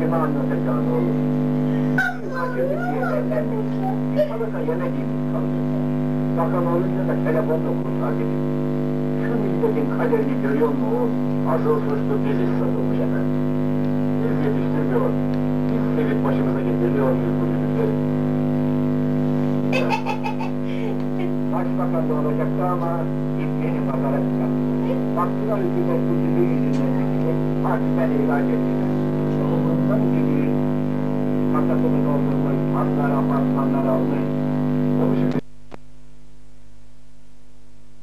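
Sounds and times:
loud electrical hum: 0:00.0 - 0:38.0
voices babbling: 0:01.8 - 0:05.1.

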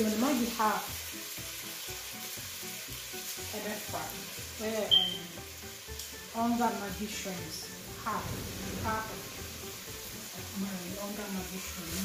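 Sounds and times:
food sizzling in a pot: 0:00.0 - 0:12.0.

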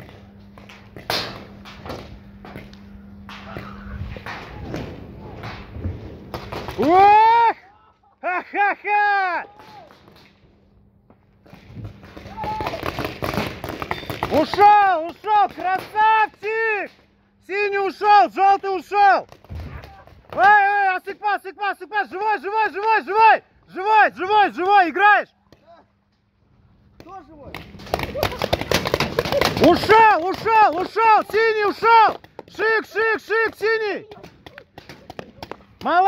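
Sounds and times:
paintball markers firing: 0:11.4 - 0:17.0, 0:27.0 - 0:32.6
men shouting: 0:14.3 - 0:16.8.

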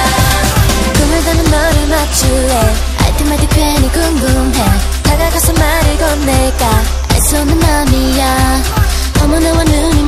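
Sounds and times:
dance-pop song: 0:00.0 - 0:10.0.

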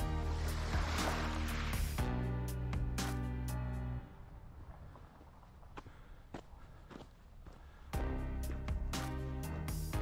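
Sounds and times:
footsteps outdoors: 0:04.3 - 0:09.8.

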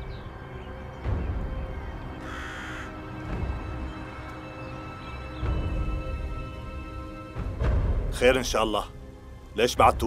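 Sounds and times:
crow cawing: 0:02.2 - 0:03.6
background music with low beats: 0:03.0 - 0:10.0.

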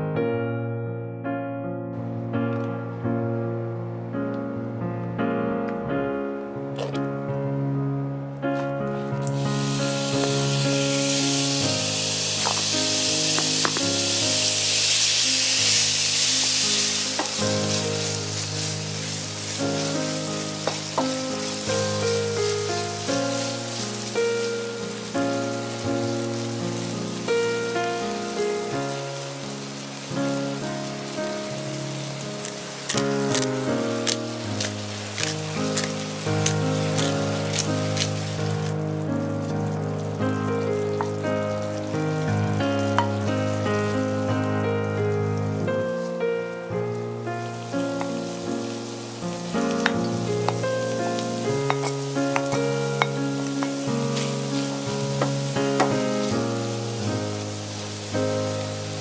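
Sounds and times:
background music: 0:01.8 - 0:59.0
meat sizzling in frying pan: 0:09.2 - 0:59.0.

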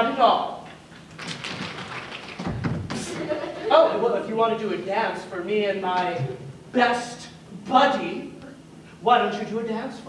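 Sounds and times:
heavy thud: 0:02.4 - 0:03.2.

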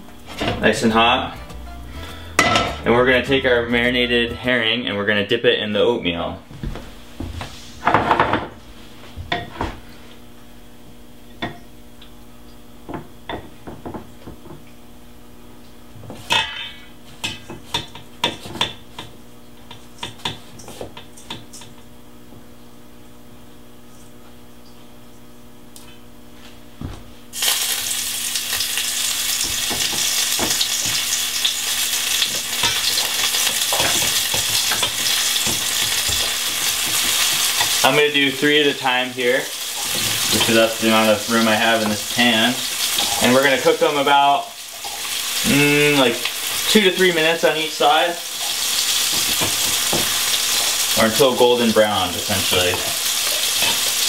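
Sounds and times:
steady hum: 0:00.0 - 0:20.0
fish sizzling in frying pan: 0:27.3 - 0:54.0.

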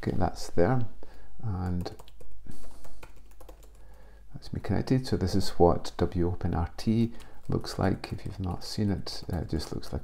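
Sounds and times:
laptop keyboard typing: 0:01.6 - 0:04.1, 0:07.0 - 0:10.0.

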